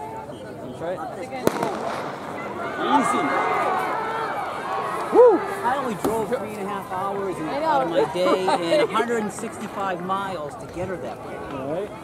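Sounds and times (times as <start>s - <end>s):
crowd talking: 0.0s - 12.0s
starter's pistol crack: 1.5s - 2.1s.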